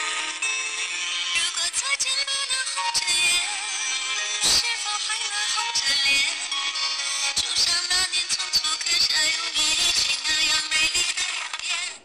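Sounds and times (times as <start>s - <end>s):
music with singing from small radio: 0.0s - 12.0s.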